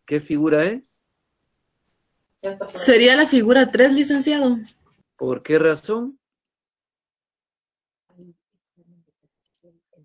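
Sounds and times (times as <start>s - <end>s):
faint broken voice over video call: 0.0s - 6.6s, 8.0s - 10.0s
person speaking: 2.4s - 6.0s.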